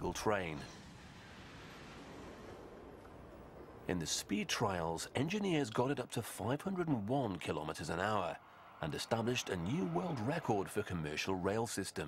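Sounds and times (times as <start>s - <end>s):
train rushing past: 0.0s - 5.1s, 7.1s - 11.6s.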